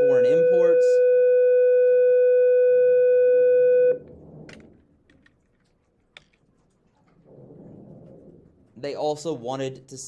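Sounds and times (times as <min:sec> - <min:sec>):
steady electronic tone: 0:00.0 - 0:04.0.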